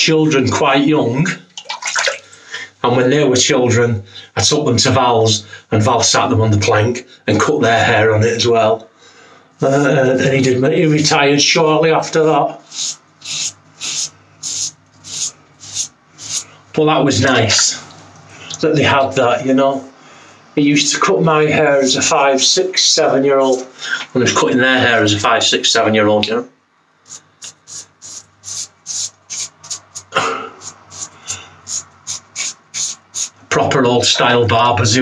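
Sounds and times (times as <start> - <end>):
razor scraping stubble: 12.7 - 16.4, 27.1 - 33.4.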